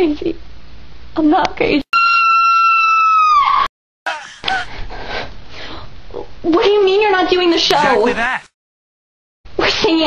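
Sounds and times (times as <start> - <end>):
girl screaming: 1.9 - 4.7.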